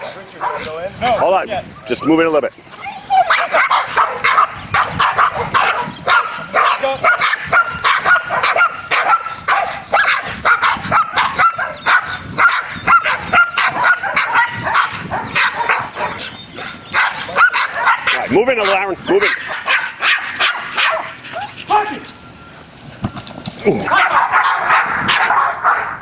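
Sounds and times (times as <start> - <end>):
dogs barking and yipping: 0.0 - 26.0.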